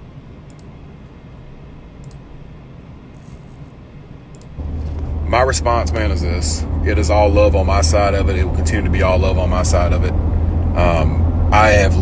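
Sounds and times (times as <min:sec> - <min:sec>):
low background hum: 0:00.0 - 0:12.0
faint clicks: 0:00.5 - 0:00.7, 0:02.0 - 0:02.2, 0:04.3 - 0:04.6
car cabin rumble: 0:04.6 - 0:12.0.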